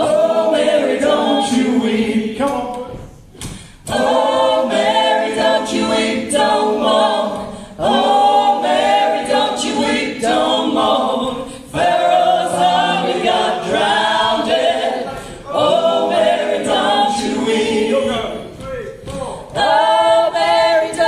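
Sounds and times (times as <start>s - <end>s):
group of voices singing: 0.0s - 21.0s
singers breathing: 3.4s - 3.9s, 7.4s - 7.8s, 11.4s - 11.7s, 15.1s - 15.5s.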